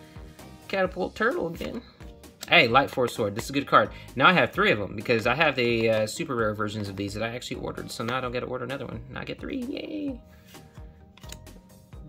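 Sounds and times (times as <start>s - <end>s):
soft background music: 0.0s - 12.0s
trading cards clicking and sliding: 10.4s - 11.7s.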